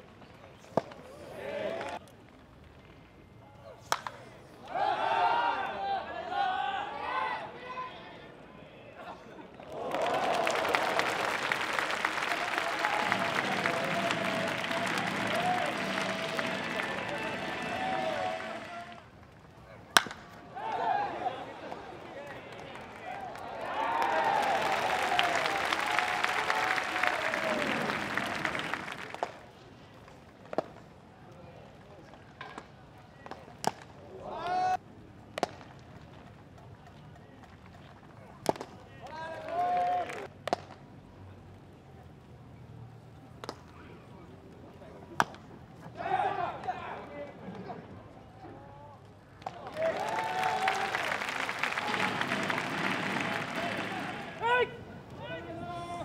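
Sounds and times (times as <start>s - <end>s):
crowd voices and clapping: 0.8s - 2.0s, 9.4s - 34.8s, 35.4s - 40.8s, 43.4s - 56.0s
baseball bat cracks: 3.9s - 4.2s, 20.0s - 20.5s.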